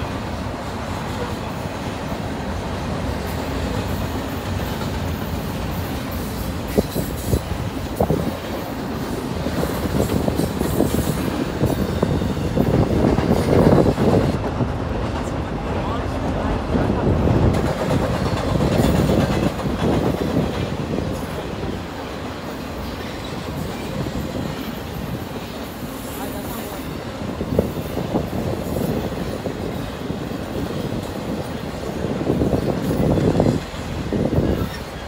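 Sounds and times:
freight train rolling past: 0:00.0 - 0:35.0.

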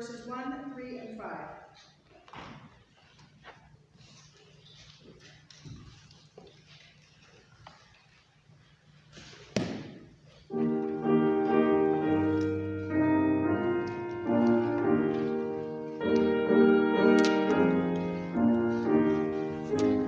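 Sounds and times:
faint room noise: 0:00.0 - 0:20.0
hymn chords on keyboard: 0:10.5 - 0:20.0.

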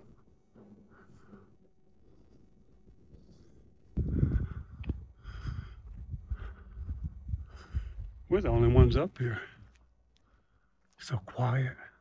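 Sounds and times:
wind buffeting microphone: 0:03.9 - 0:09.1
footsteps on pavement: 0:04.8 - 0:08.6.

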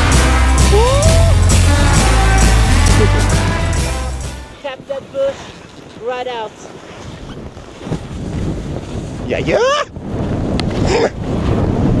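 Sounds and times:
wind buffeting microphone: 0:04.6 - 0:12.0.

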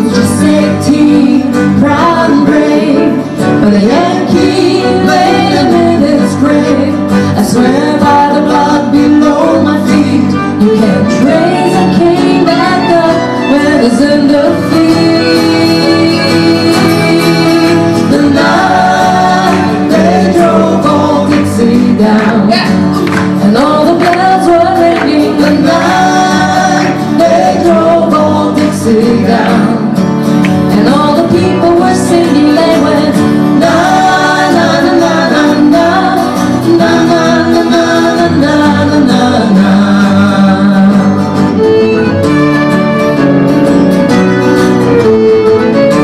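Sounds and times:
woman and man singing together: 0:00.0 - 0:30.0, 0:30.6 - 0:41.5
acoustic guitar: 0:00.0 - 0:46.0
string instruments: 0:00.0 - 0:46.0.

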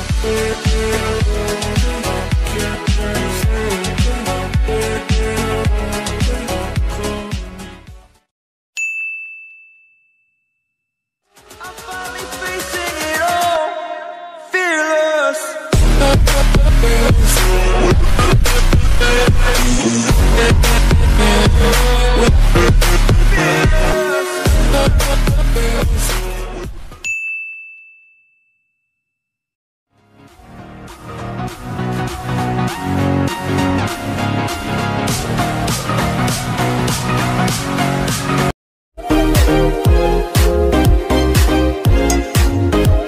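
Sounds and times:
high bell-like ding: 0:08.8 - 0:10.9, 0:27.0 - 0:29.2.

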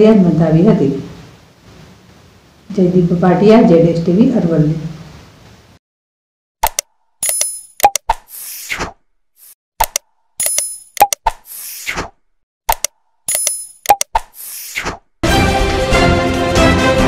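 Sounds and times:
sharp click pops: 0:06.6 - 0:08.3, 0:09.8 - 0:12.1, 0:12.7 - 0:15.0.

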